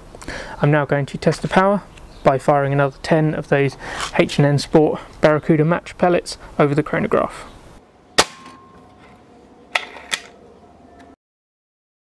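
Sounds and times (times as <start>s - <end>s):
air rifle shot: 8.2s - 8.6s.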